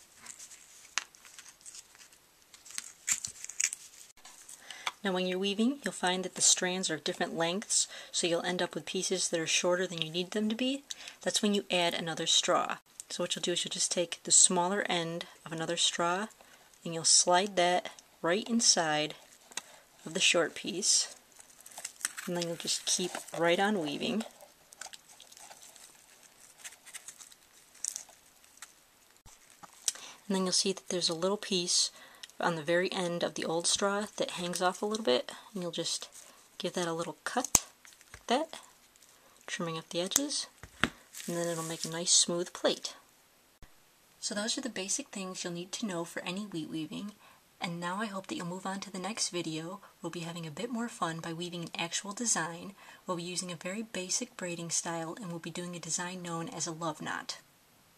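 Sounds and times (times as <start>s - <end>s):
straw rustling and crackling: 0.0s - 4.6s, 19.0s - 30.1s, 37.3s - 42.1s
dry straw crackling: 21.1s - 30.0s, 41.1s - 42.0s.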